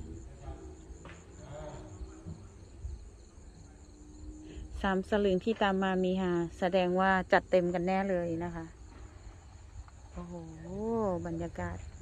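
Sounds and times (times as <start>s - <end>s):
crickets trilling: 0.0s - 12.0s
low uneven rumble: 0.0s - 12.0s.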